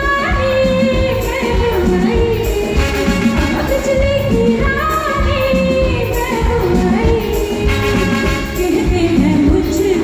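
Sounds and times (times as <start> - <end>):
drums and percussion: 0.0 - 10.0
woman singing into a microphone: 0.0 - 10.0
trumpet playing: 2.8 - 4.2, 7.6 - 8.9.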